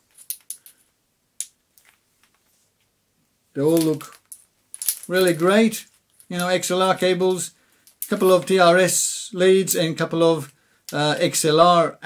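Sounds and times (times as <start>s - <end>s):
metal connectors clinking: 0.0s - 2.4s, 3.6s - 8.6s.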